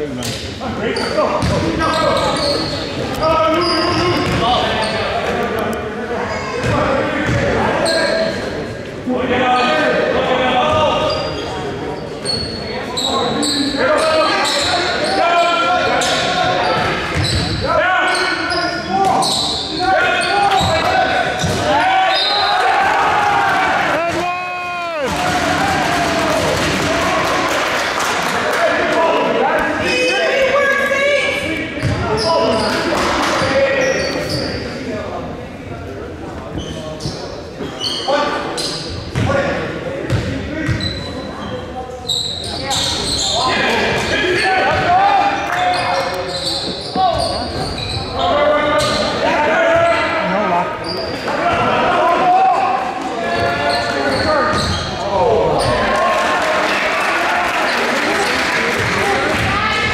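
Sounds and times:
sneakers squeaking: 0.2 - 5.5, 6.2 - 8.6, 10.6 - 22.8, 31.6 - 34.8, 36.3 - 51.8, 53.3 - 56.0.

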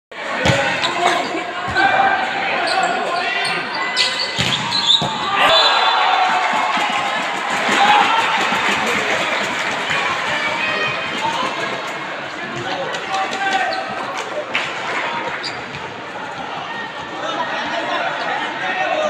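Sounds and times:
players and spectators shouting: 0.2 - 19.0.

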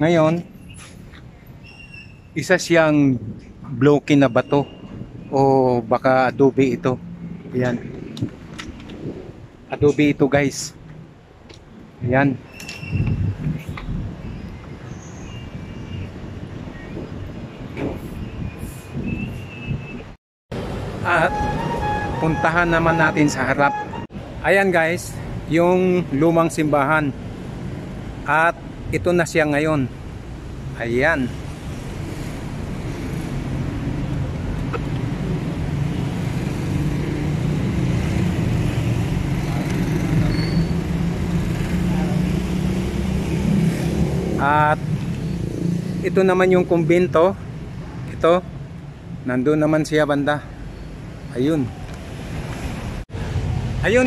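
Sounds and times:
distant traffic rumble: 0.0 - 54.0
wind on microphone: 7.4 - 10.0, 12.8 - 14.7, 16.0 - 20.2.

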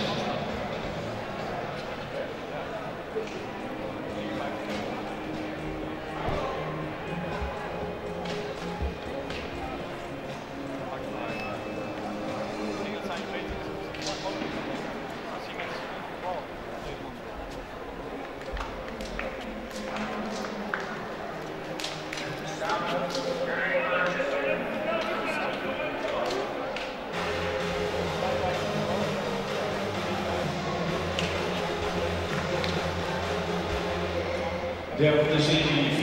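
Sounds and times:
indistinct chatter echoing: 0.0 - 36.0.

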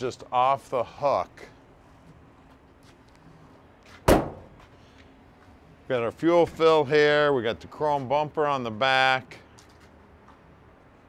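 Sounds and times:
car door slammed shut: 4.1 - 4.6.

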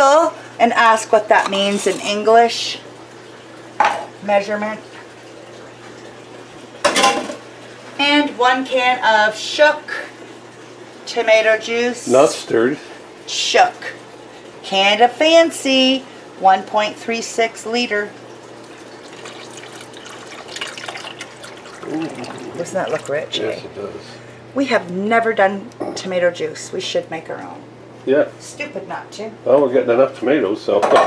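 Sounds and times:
kitchenware clatter: 1.3 - 2.4, 6.8 - 7.4, 30.8 - 31.0
liquid pouring into metal pot: 18.3 - 23.9.

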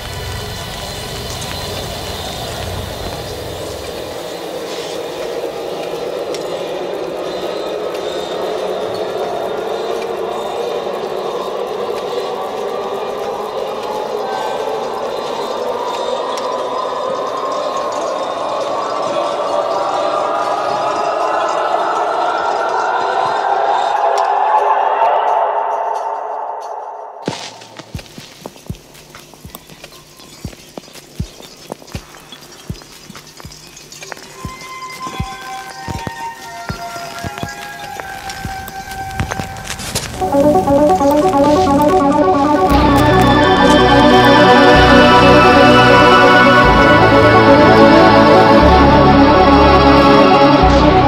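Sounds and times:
noisy electronic drone rising in pitch: 36.7 - 51.0.

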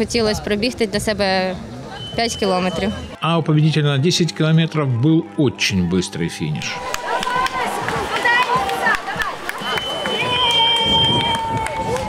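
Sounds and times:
spectators calling out and talking: 0.0 - 12.0.

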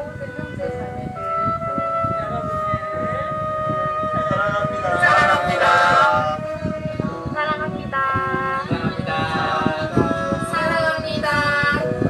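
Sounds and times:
backing track with steady beat: 0.0 - 12.0
high voice singing: 4.6 - 11.8.

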